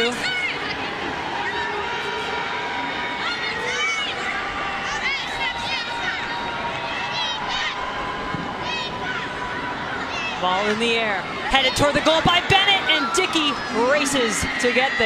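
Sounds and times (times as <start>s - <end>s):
crowd murmur: 0.0s - 15.0s
high-pitched crowd shouts: 0.0s - 15.0s.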